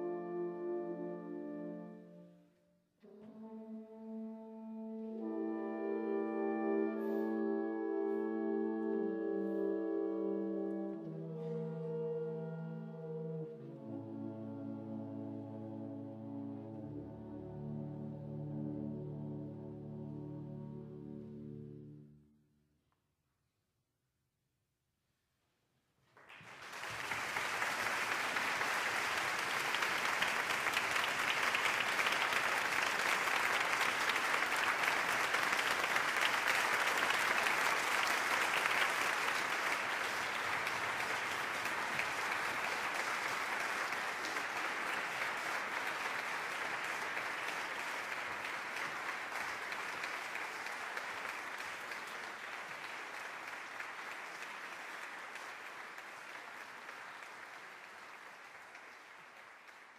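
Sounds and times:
audience applauding: 26.1s - 59.9s.

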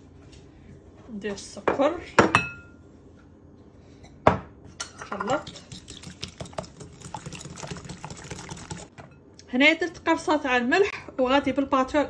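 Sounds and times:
sugar pouring into bowl: 5.4s - 8.9s.

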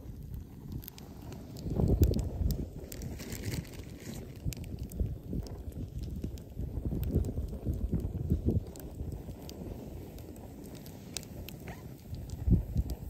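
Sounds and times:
campfire crackling and popping: 0.0s - 13.0s
wind buffeting microphone: 0.0s - 13.0s.

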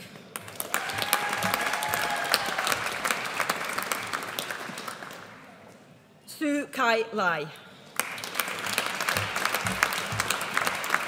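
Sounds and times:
audience clapping: 0.0s - 5.6s, 8.0s - 11.0s.

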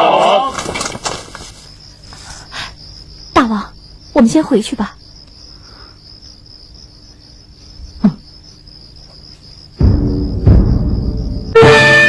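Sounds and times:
crickets chirring: 0.0s - 12.0s
low drum hit: 9.8s - 11.6s
orchestral music: 11.5s - 12.0s.

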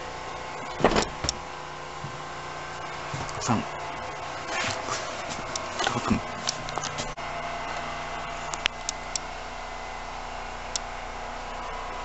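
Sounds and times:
railway carriage low hum: 0.0s - 12.0s.

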